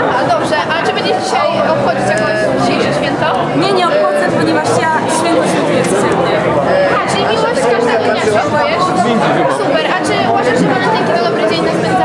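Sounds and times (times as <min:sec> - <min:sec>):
voices chattering: 0:00.0 - 0:12.0.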